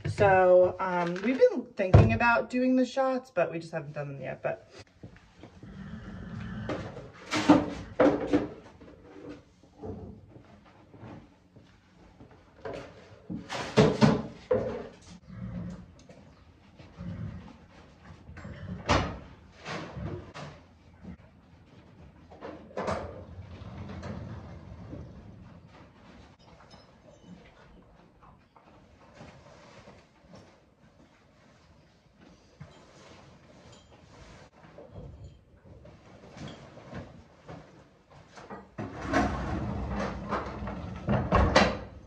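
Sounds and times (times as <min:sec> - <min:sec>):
stall doors sliding: 0:38.8 - 0:41.9.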